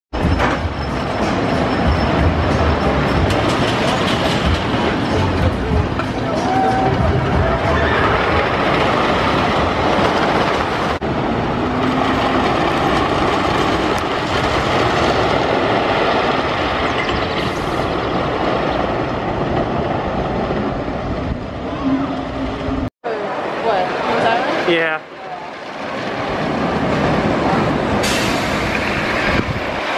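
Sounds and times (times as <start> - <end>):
roller coaster rumbling on wooden track: 0.2 - 29.9.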